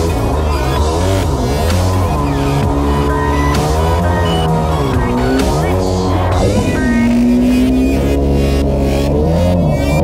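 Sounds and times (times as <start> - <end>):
electronic music with steady beat: 0.0 - 10.0
jet ski engine revving: 0.0 - 10.0.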